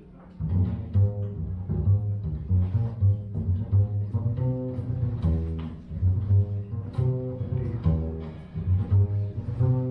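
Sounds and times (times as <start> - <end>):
double bass playing low notes: 0.2 - 9.9.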